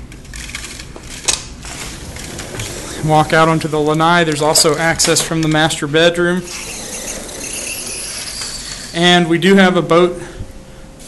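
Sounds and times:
sliding door rolling rattle: 0.6 - 9.2.

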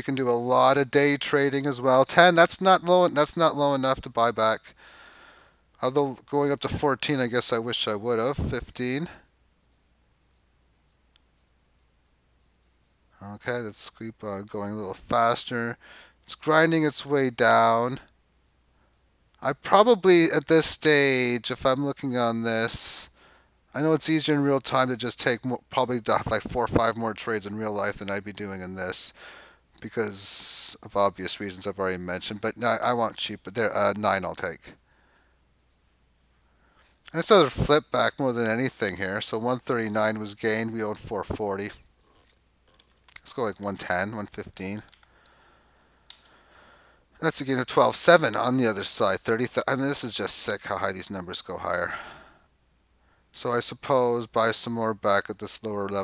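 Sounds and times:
computer mouse clicks: 9.2 - 13.1, 18.3 - 19.4, 35.6 - 35.8, 44.8 - 45.4, 46.1 - 46.3.

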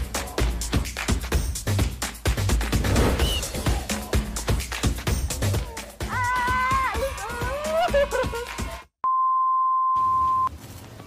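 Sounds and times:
music: 0.0 - 8.9.

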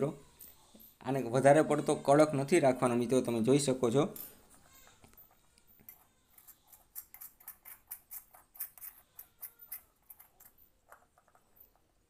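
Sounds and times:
spoon scraping metal bowl: 5.8 - 11.9.

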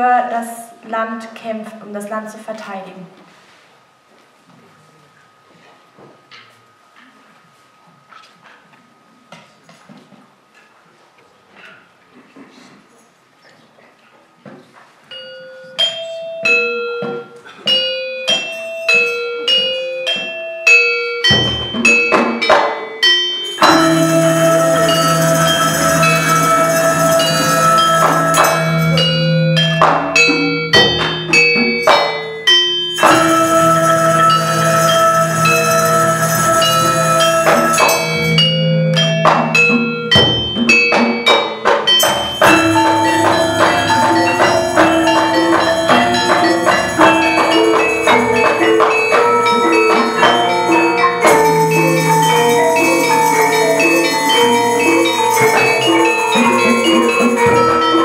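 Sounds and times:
gamelan ensemble playing: 15.1 - 58.0
gamelan mallet instrument melody: 15.1 - 58.0
low gong hum: 23.6 - 29.7.

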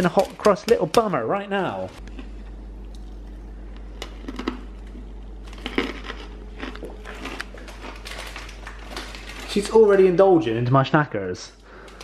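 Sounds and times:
plastic snack packet crinkling: 0.0 - 1.1, 4.0 - 10.7
steady low hum: 0.0 - 12.0.

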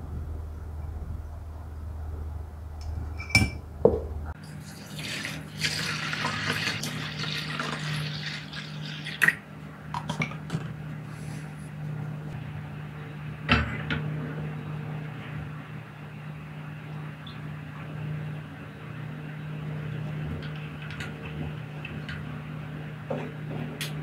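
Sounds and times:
low hum: 0.0 - 4.4.

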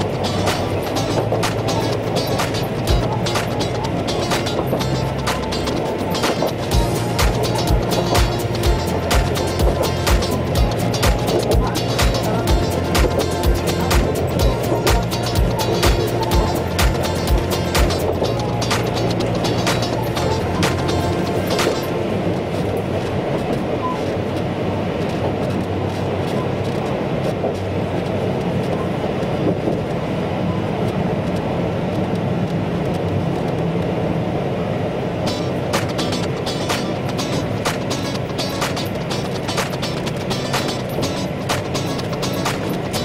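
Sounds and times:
sharp irregular clicks and rattles: 0.0 - 21.9, 35.3 - 43.0
train rumble and motor hum: 0.0 - 43.0.

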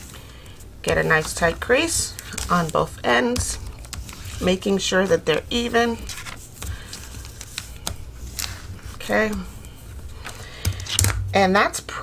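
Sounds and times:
paper rustling: 0.0 - 11.2
bone folder scraping paper: 0.9 - 10.4.

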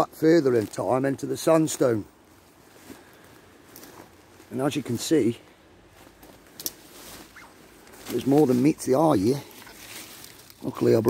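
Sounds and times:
rustling of leaves: 0.0 - 11.0
sharp crackle: 6.3 - 11.0.

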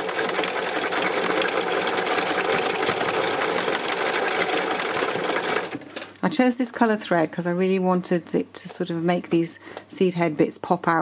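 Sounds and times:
sewing machine running: 0.0 - 6.1.

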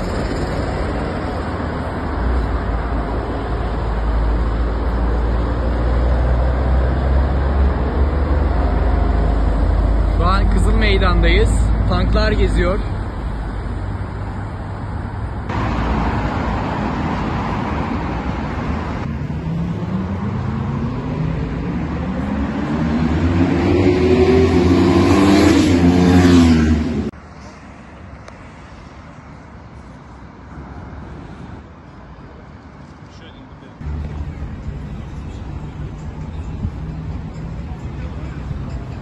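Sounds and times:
vehicle engine speeding up: 0.0 - 10.2, 15.5 - 27.1
road and engine noise: 0.0 - 39.0
street ambience: 0.0 - 39.0.

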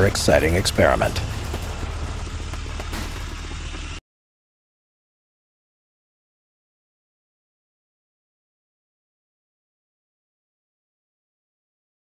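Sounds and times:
low vehicle rumble: 0.0 - 4.0.

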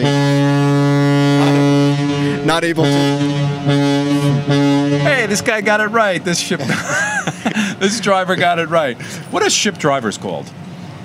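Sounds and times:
ship's horn blast: 0.0 - 6.4.

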